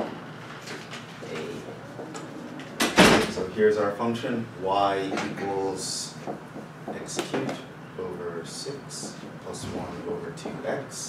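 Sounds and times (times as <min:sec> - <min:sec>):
man talking: 0:03.0 - 0:06.2, 0:06.9 - 0:11.0
marker writing on whiteboard: 0:08.6 - 0:09.5.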